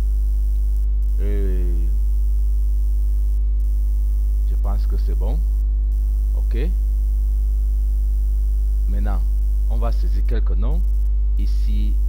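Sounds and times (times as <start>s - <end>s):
electrical mains hum: 0.0s - 12.0s
voiced hesitation sound: 1.2s - 2.0s.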